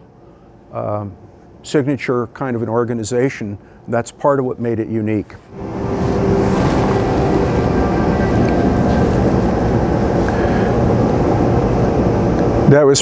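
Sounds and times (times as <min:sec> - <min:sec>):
film music: 0:05.5 - 0:11.8
dense rumble: 0:05.5 - 0:12.7.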